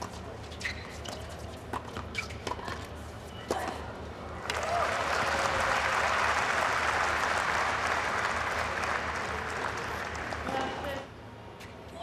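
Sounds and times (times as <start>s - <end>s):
crowd applauding: 4.5s - 10.5s.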